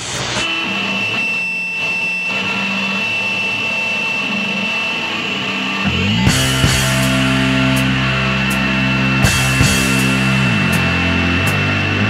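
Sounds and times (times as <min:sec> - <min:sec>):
electric guitar whine: 0:00.0 - 0:12.0
low held guitar notes: 0:04.2 - 0:12.0.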